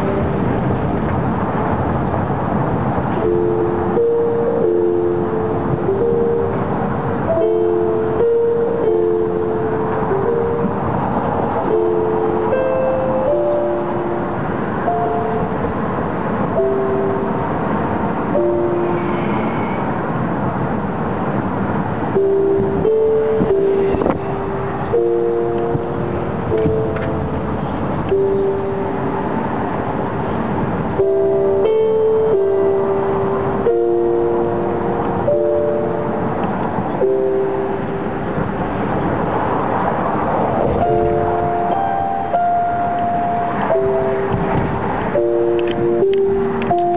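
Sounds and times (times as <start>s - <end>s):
car road and engine noise: 0.0s - 46.9s
slow melodic music: 3.0s - 19.3s, 21.8s - 46.9s.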